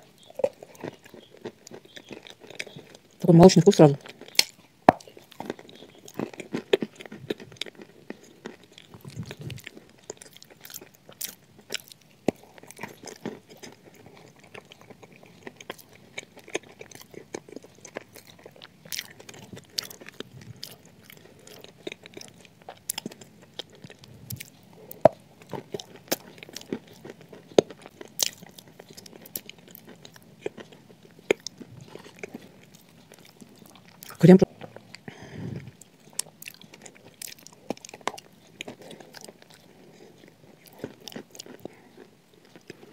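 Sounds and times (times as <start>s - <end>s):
crunchy chewing: 0.0s - 42.9s
biscuit bite: 4.1s - 34.3s.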